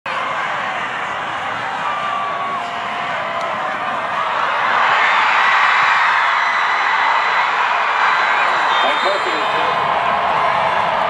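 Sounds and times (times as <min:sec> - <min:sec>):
crowd cheering and shouting: 0:00.1 - 0:11.0.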